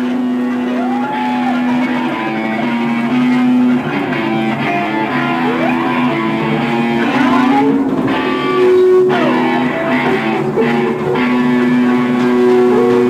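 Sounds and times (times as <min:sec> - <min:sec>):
electric guitar sliding notes: 0:00.0 - 0:13.0
noise rock band playing: 0:00.0 - 0:13.0.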